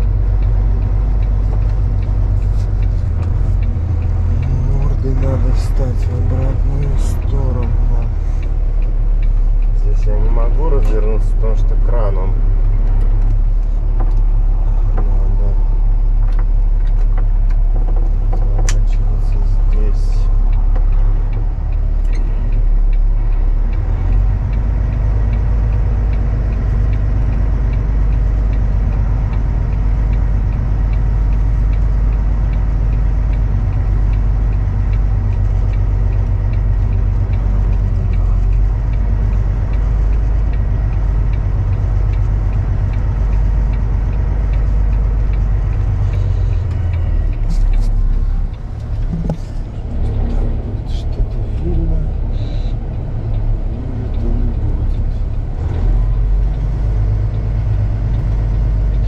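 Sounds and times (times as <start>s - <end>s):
truck diesel engine droning: 0.0s - 59.0s.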